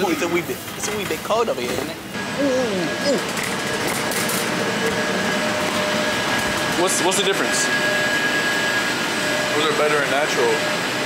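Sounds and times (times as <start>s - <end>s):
refrigeration fans whooshing: 0.0s - 11.0s.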